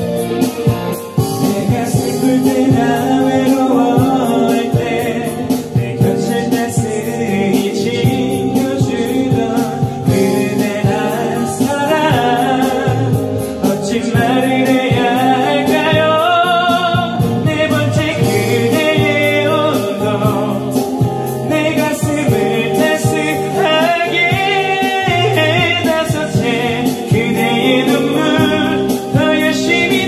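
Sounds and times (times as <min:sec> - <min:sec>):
karaoke backing track with drums: 0:00.0 - 0:30.0
man singing pop ballad: 0:00.0 - 0:30.0.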